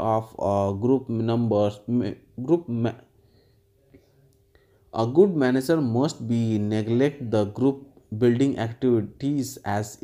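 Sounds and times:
man speaking: 0.0s - 3.1s, 4.9s - 10.0s
faint steady hum: 0.0s - 10.0s.

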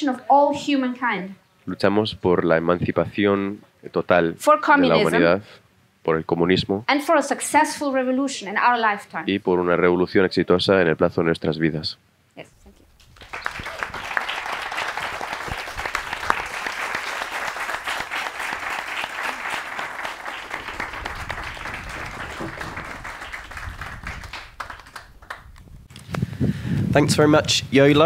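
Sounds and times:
audience applauding: 13.0s - 25.6s.

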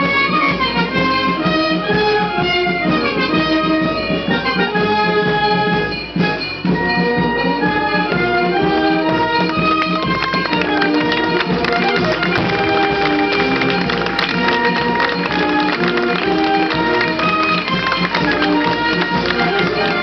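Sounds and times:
wind band playing slow melody: 0.0s - 20.0s.

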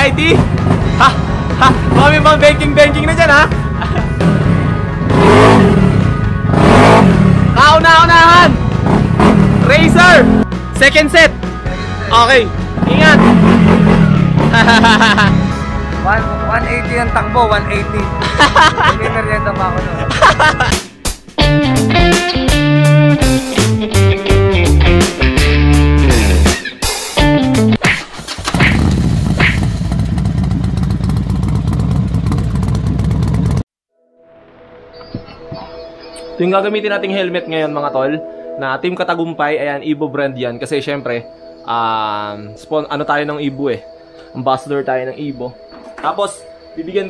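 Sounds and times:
guitar music: 0.5s - 27.9s
scooter engine revving: 4.2s - 7.6s, 12.8s - 15.6s, 28.0s - 33.6s
scooter engine running: 28.3s - 33.6s.

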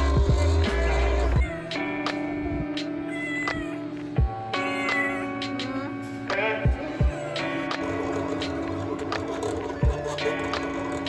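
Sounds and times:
background music: 0.0s - 11.0s
cat meowing: 1.2s - 2.0s, 3.0s - 5.6s.

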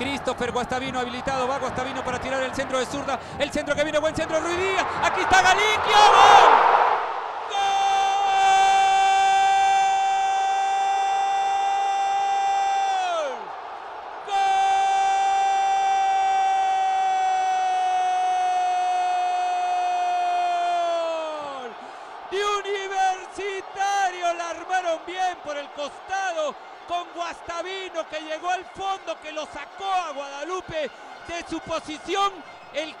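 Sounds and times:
fast excited commentary: 0.0s - 6.7s, 22.3s - 33.0s
commentator shouting goal cry: 7.5s - 13.5s, 14.2s - 33.0s.

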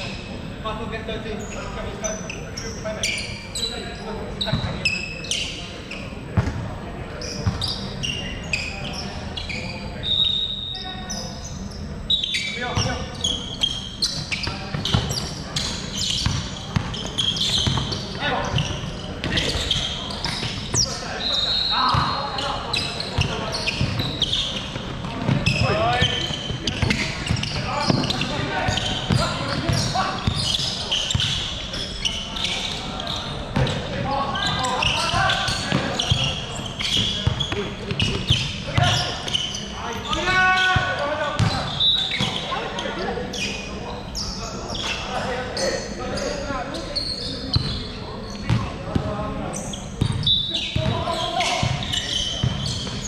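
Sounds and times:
sneakers squeaking: 0.0s - 53.0s
players calling out: 7.1s - 46.4s
basketball bouncing: 16.2s - 20.8s, 37.0s - 39.1s.

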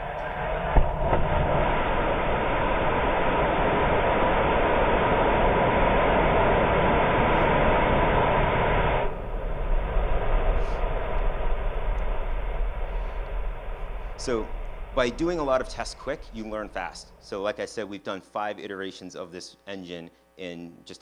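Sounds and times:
uneven low rumbling: 0.0s - 17.8s
rocket engine roaring: 0.0s - 17.9s.

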